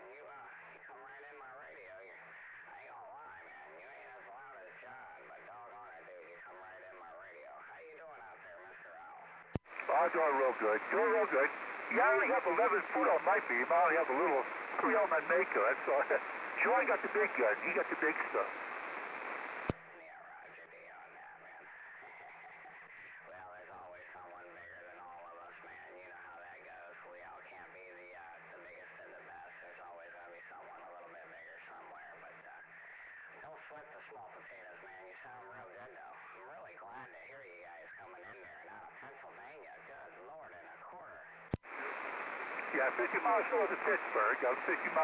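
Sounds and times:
radio band noise: 9.3s - 20.0s, 41.6s - 45.0s
radio click: 9.6s - 19.8s, 41.5s - 45.0s
garbled radio voices: 9.7s - 19.8s, 41.7s - 45.0s.

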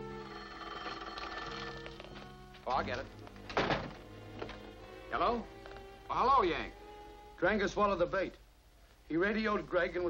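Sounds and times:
telephone bell ringing: 0.0s - 2.2s
film music held notes: 0.0s - 8.4s.

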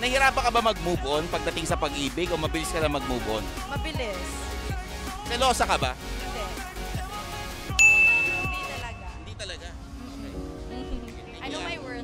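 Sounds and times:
background music: 0.0s - 12.0s
bell-like ding: 7.8s - 9.2s.

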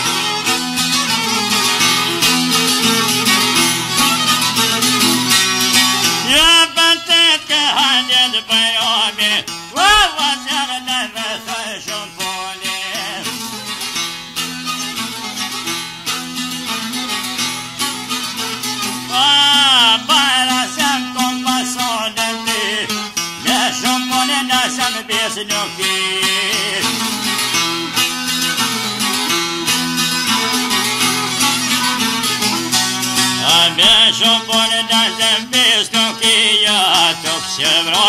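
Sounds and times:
plucked long-necked lute: 0.0s - 38.0s
man singing: 6.2s - 13.5s, 19.1s - 27.5s, 33.3s - 38.0s.

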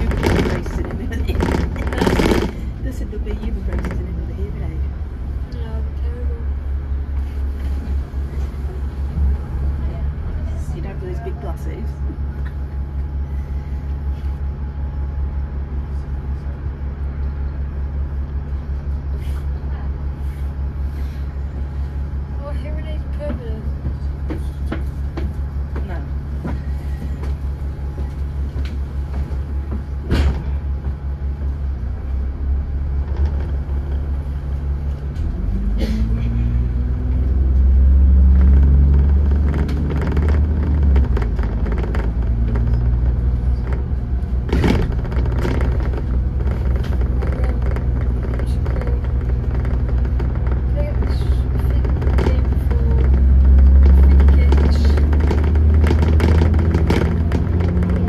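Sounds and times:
bus diesel engine idling and revving: 0.0s - 58.0s.

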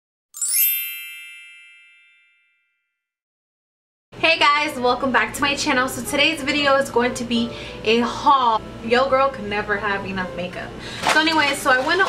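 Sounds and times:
bright chime: 0.4s - 2.8s.

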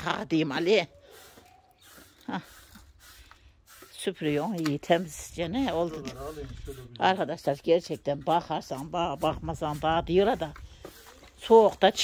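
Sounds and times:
stiff broom brushing concrete: 0.0s - 12.0s
light scrapes and taps: 2.7s - 5.0s, 5.8s - 7.2s, 10.3s - 11.8s.

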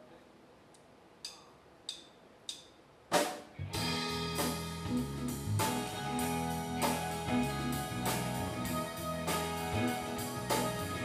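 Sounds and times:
rock band playing: 3.6s - 11.0s.

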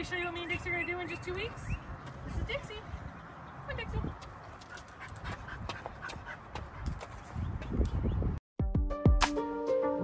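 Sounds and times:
puppy panting: 4.5s - 7.4s.

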